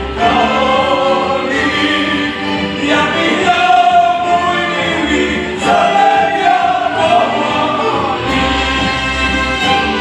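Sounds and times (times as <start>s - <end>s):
voices singing together: 0.0s - 9.7s
folk band fiddles and bass: 0.0s - 10.0s.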